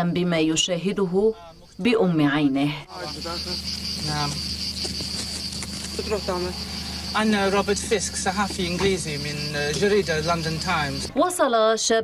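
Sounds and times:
crickets chirring: 0.1 - 11.2
low hum: 0.4 - 11.2
faint men's voices: 2.9 - 11.2.

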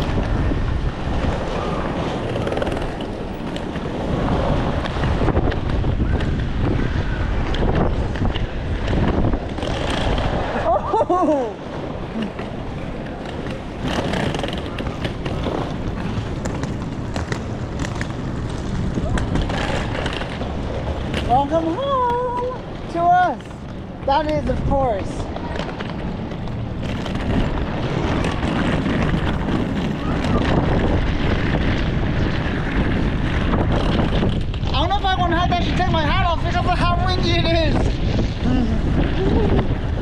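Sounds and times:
gusty wind on microphone: 0.0 - 40.0.

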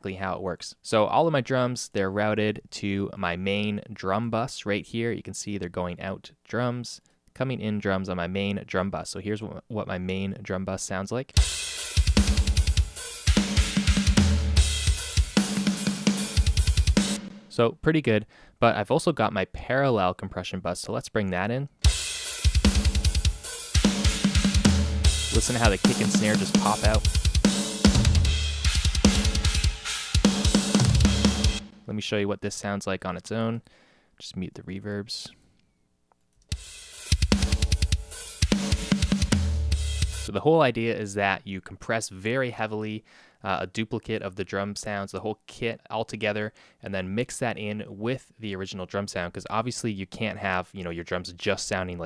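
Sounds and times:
double bass drum runs: 23.8 - 31.6.

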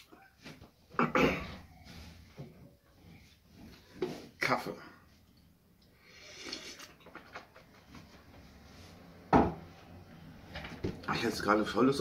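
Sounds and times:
person drinking from mug: 6.1 - 7.1
mug knocking on wooden desk: 9.3 - 9.6.

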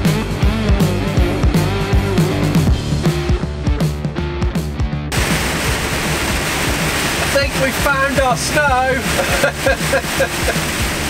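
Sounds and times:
rain and tyre spray: 5.1 - 11.0
person speaking: 7.2 - 10.4.

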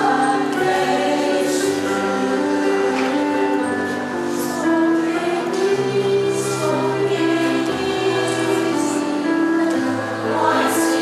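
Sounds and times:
women's choir singing: 0.0 - 11.0.

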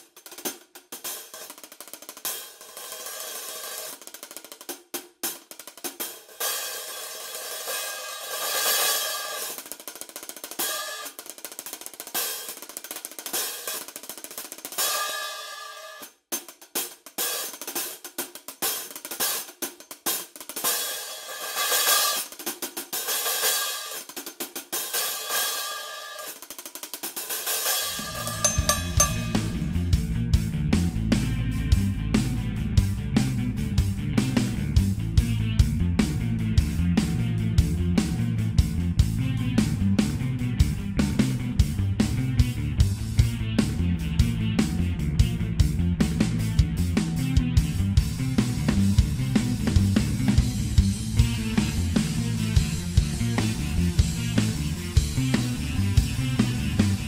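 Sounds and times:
hi-hat cymbals played with drumsticks: 0.0 - 30.1, 48.7 - 57.0
music with deep low end: 27.9 - 57.0.

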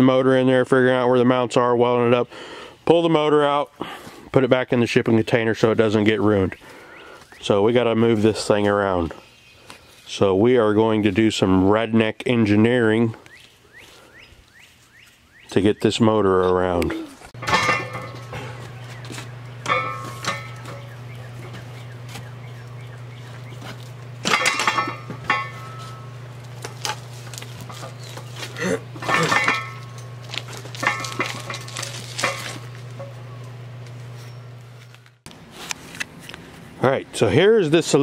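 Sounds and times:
low steady hum: 0.0 - 38.0
metal cart clanking and rattling: 17.4 - 21.9, 23.6 - 33.3.

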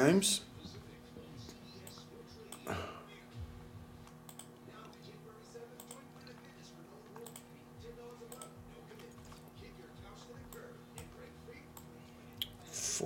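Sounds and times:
low steady hum: 0.0 - 13.0
computer clicks: 4.3 - 4.5, 5.8 - 6.0, 7.2 - 7.5, 8.3 - 8.6.

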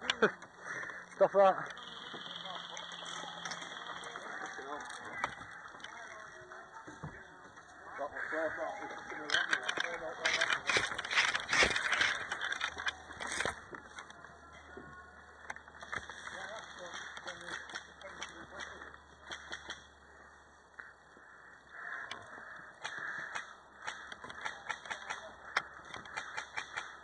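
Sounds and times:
footsteps on forest floor: 1.7 - 14.2
clothing and kit rustling: 3.0 - 17.7.

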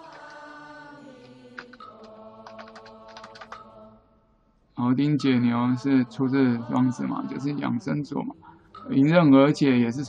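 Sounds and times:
computer keyboard typing: 0.0 - 0.4, 1.2 - 3.6
chanting: 0.0 - 4.2, 4.8 - 10.0.

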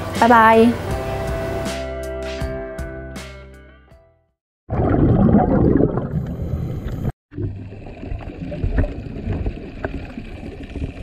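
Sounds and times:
underwater rushing bubbling water: 4.7 - 11.0.

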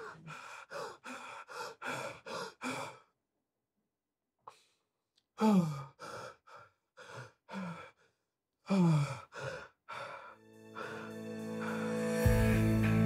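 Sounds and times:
man breathing heavily and sighing: 5.4 - 13.0
sustained musical chord: 10.4 - 13.0.

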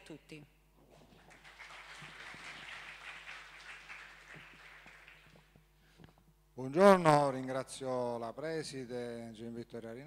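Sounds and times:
faint audience applause: 1.1 - 5.6.

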